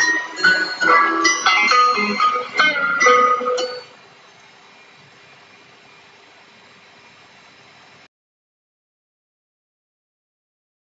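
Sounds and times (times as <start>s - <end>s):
faint microphone hiss: 0.0s - 8.1s
faint steady hum: 0.0s - 8.1s.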